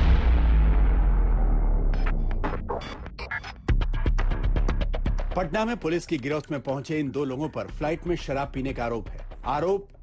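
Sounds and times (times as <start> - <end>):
deep boom low rumble: 0.0 - 2.7.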